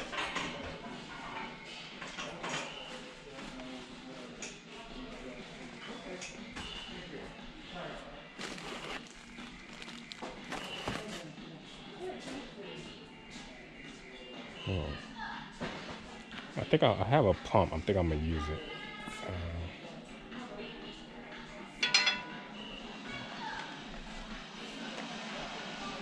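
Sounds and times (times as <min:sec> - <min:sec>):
faint indistinct voices: 0:00.0 - 0:26.0.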